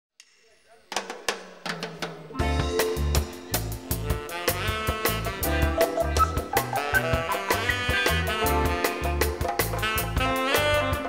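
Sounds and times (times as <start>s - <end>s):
drum kit hits: 1.7s - 11.0s.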